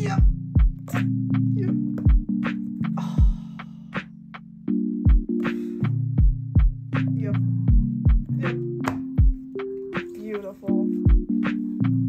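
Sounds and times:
relaxed beat with sustained chords: 0.0s - 12.0s.

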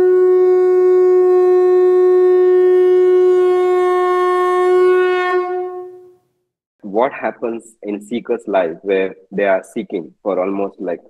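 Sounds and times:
long horn note: 0.0s - 6.2s.

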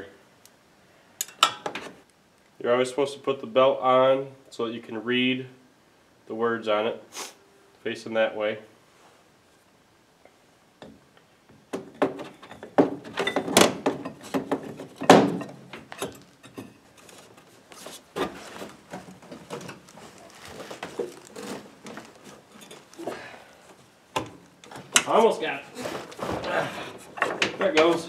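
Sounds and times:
belt rubbing and scraping: 16.9s - 23.0s.

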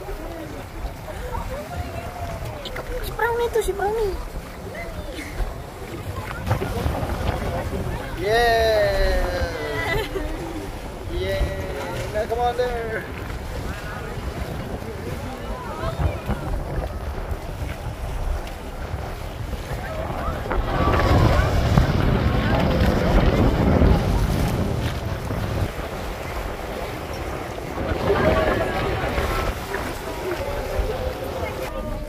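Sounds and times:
boat engine: 0.0s - 32.0s
passing boat: 0.0s - 32.0s
sea rushing: 0.0s - 32.0s
wind buffeting microphone: 0.0s - 32.0s.

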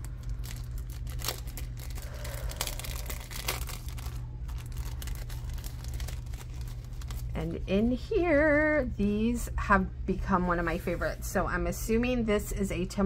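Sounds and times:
plastic bag crinkling: 0.0s - 7.5s.

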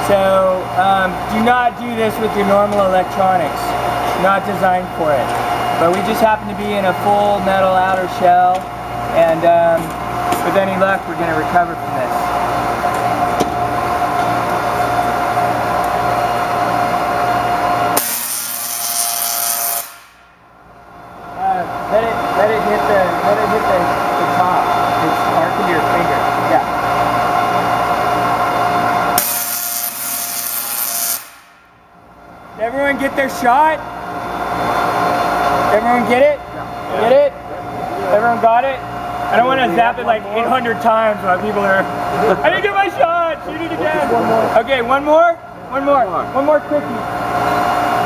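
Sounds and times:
tesla coil electrical buzz: 0.0s - 48.0s.

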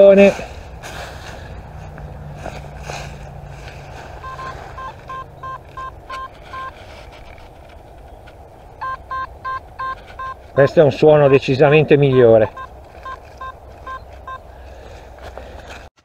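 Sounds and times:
metal detector beeps: 4.2s - 6.8s, 8.8s - 14.4s.

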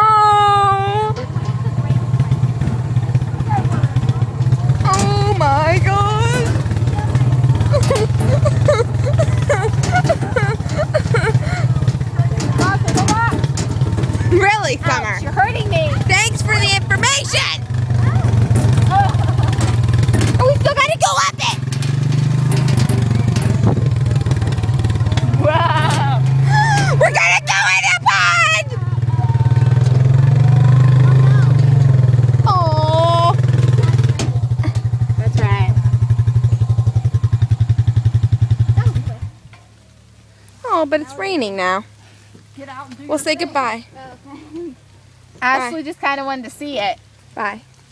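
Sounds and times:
women shrieking: 0.0s - 1.2s, 25.4s - 28.8s
excited voices: 0.0s - 21.8s, 23.0s - 38.0s
quad bike engine running: 0.0s - 47.9s.

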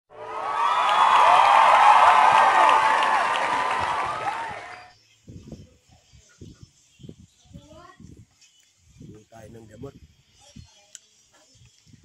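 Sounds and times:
crowd cheering and shouting: 0.1s - 4.9s.

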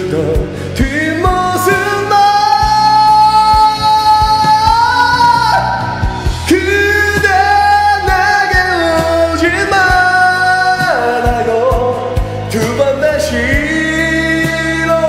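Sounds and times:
karaoke backing track with drums: 0.0s - 15.0s
man singing pop ballad: 0.0s - 15.0s.

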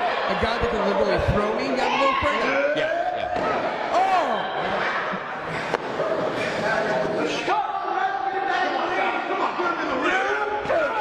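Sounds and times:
people shouting: 1.8s - 5.2s, 6.4s - 11.0s.

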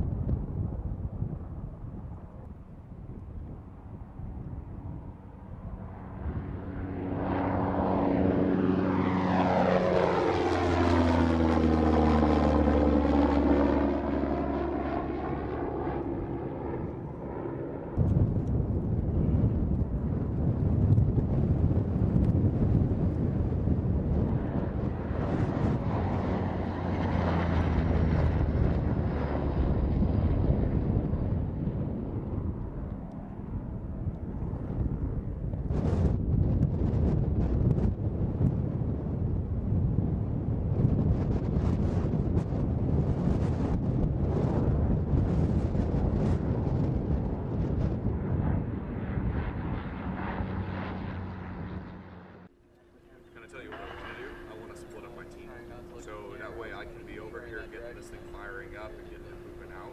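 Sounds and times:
drone propeller engine flying past: 0.0s - 59.9s.

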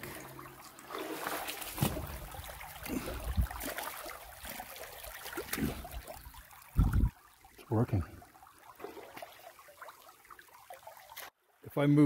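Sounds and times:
creek trickling over rocks: 0.0s - 12.0s.

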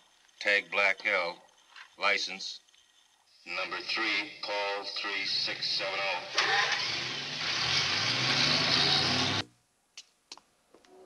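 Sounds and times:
car engines revving: 5.4s - 9.4s.

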